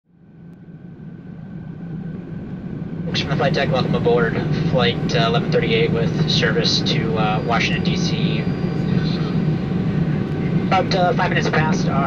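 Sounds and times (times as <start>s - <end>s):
aircraft cabin low hum: 0.4s - 12.0s.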